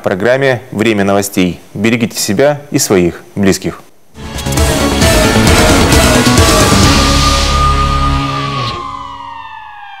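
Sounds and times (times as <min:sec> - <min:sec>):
theme music beat: 0:04.2 - 0:09.4
siren-like tone sliding down: 0:06.3 - 0:10.0.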